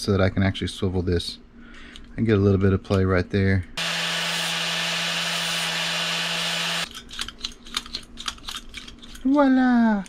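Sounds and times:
angle grinder grinding steel: 3.8 - 6.9.

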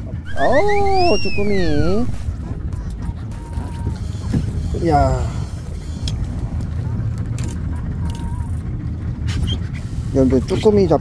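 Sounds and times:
boat engine rumbling: 0.0 - 3.3, 8.6 - 10.0.

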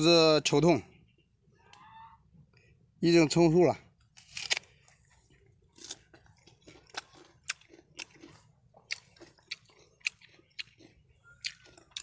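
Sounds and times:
person chewing fruit: 4.0 - 12.0.

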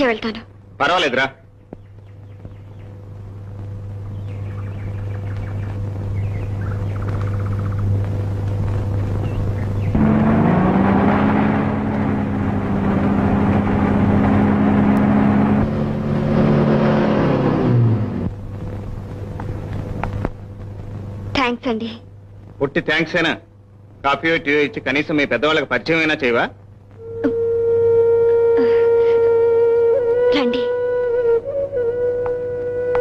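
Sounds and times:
car engine revving: 8.7 - 18.8.

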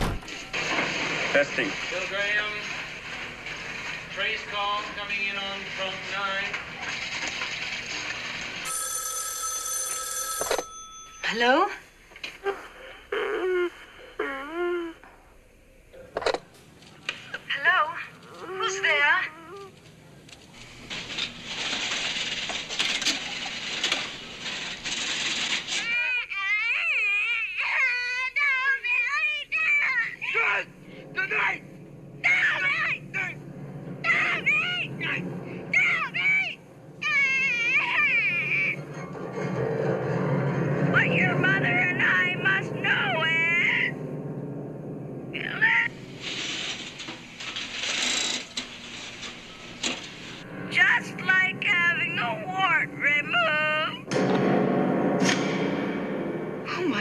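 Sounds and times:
shrill squeals and crying: 25.7 - 30.3, 34.0 - 38.8.

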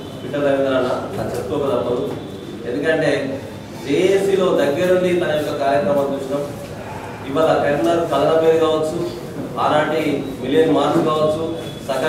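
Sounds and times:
man speaking with echo: 0.0 - 12.0.

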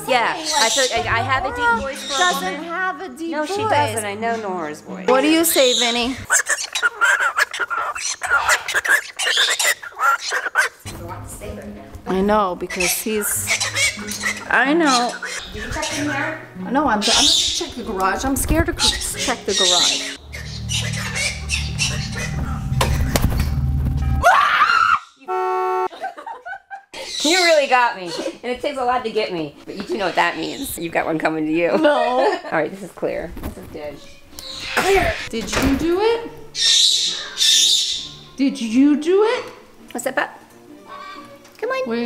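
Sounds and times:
cockatoo chattering: 0.4 - 2.6, 3.4 - 11.0, 12.6 - 16.4, 17.0 - 17.9, 18.6 - 23.1, 29.6 - 31.0, 36.6 - 38.2
bird beak clicks: 6.3 - 10.7
woman screaming in fright: 24.2 - 25.3
short horn-like tone: 25.3 - 25.9.

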